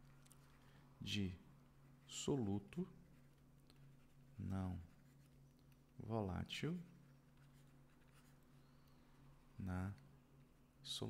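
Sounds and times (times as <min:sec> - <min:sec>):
stylus scratching on pen tablet: 0:00.0 - 0:06.0, 0:06.6 - 0:09.6
low electrical hum: 0:00.0 - 0:11.0.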